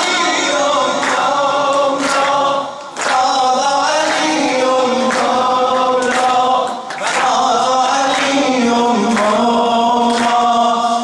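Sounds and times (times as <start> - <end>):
unaccompanied devotional singing: 0.0 - 11.0.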